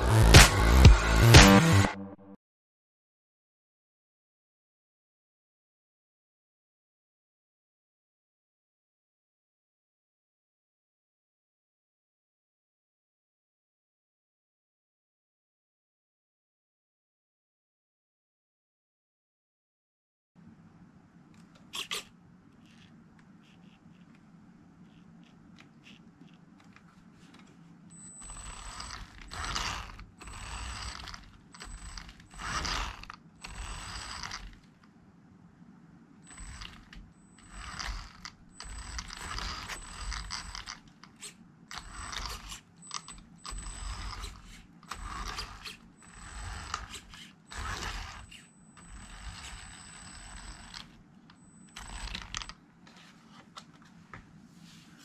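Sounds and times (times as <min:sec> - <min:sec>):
toy car motor whirring and whining: 0:21.7 - 0:24.1, 0:24.9 - 0:26.4, 0:27.9 - 0:34.7, 0:36.2 - 0:52.6.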